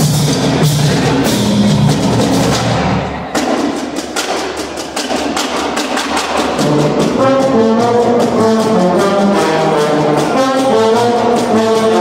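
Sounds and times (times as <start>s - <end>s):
snare and bass drums: 0.0s - 12.0s
sustained low brass notes: 6.6s - 12.0s.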